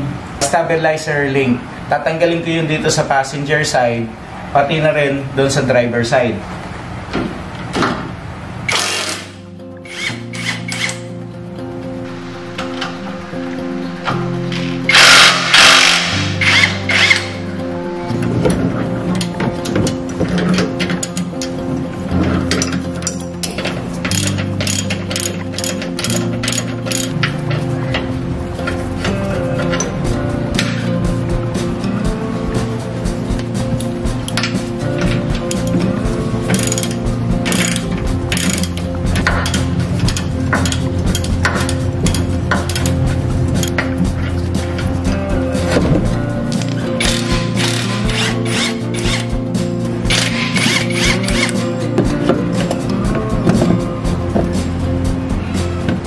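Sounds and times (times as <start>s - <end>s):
background music: 8.6s - 56.0s
hand tool clicks: 14.6s - 17.4s, 22.5s - 27.2s, 36.5s - 42.9s, 50.1s - 51.6s
impact wrench hammering: 14.9s - 17.4s.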